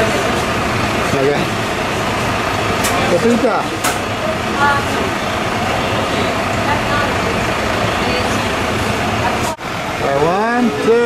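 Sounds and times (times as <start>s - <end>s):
loud background din: 0.0s - 11.0s
faint indistinct voices: 2.8s - 11.0s.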